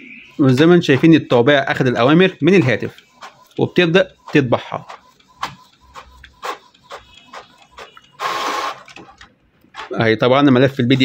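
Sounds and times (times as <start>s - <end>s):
printer whirring: 0.0s - 11.0s
printer clicks: 2.5s - 10.0s.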